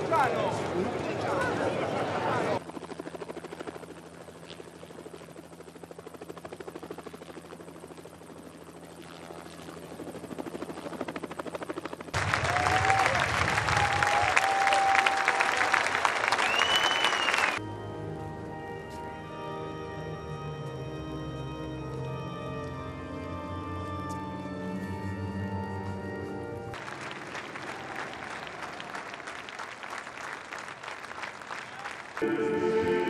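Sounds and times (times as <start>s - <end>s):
helicopter rotor chopping: 0.0s - 14.0s
crowd cheering and applauding: 12.2s - 17.6s, 26.8s - 33.0s
whistling: 16.2s - 17.6s
church organ chords: 17.6s - 26.7s, 32.2s - 33.0s.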